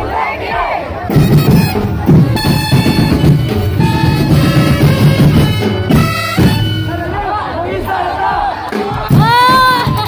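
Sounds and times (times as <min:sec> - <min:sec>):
crowd shouting together: 0:00.0 - 0:02.4, 0:06.3 - 0:10.0
drums and band music: 0:00.6 - 0:10.0.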